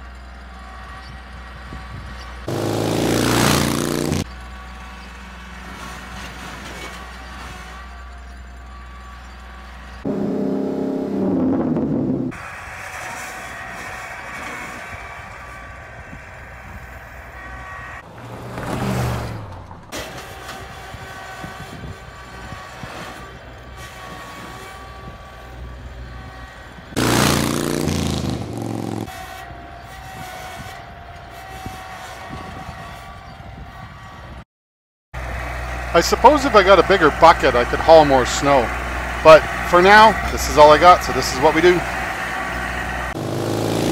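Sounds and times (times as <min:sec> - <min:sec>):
tractor diesel engine running: 0:00.0 - 0:18.5, 0:19.4 - 0:30.0, 0:35.2 - 0:43.9.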